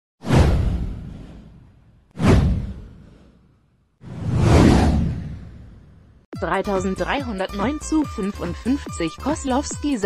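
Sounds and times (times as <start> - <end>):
deep whoosh: 0.2 - 6.2.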